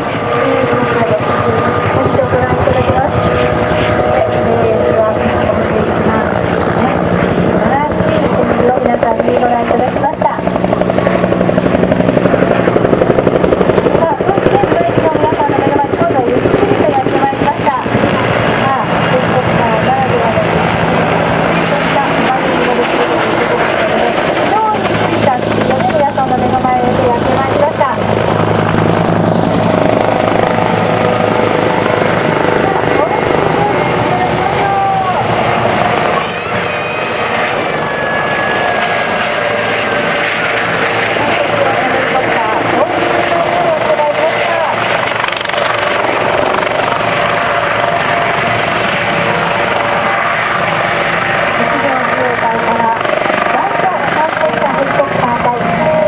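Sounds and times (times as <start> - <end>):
voices: 0.0 - 50.4, 51.5 - 56.0
helicopter rotors and engines: 0.0 - 56.0.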